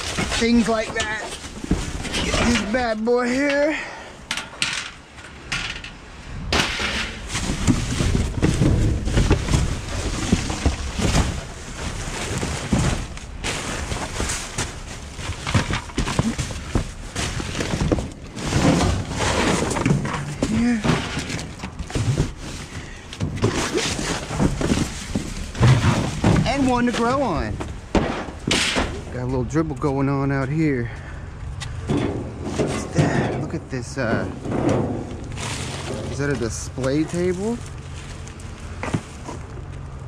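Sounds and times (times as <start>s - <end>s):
rummaging through metal dumpster: 0.0s - 29.6s, 31.6s - 40.0s.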